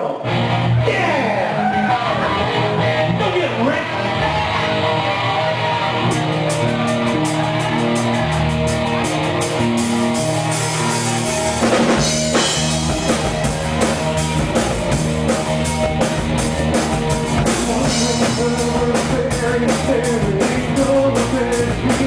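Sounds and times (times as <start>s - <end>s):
electric guitar: 0.0s - 22.0s
rock band playing: 0.0s - 22.0s
drums keeping a steady beat: 4.1s - 22.0s.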